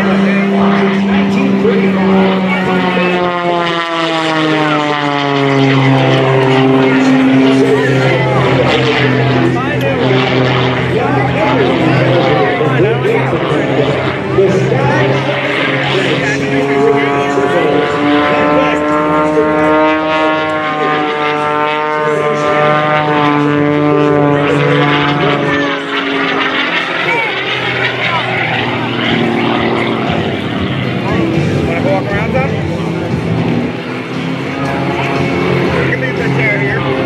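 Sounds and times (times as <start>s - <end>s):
propeller plane droning overhead: 0.0s - 37.0s.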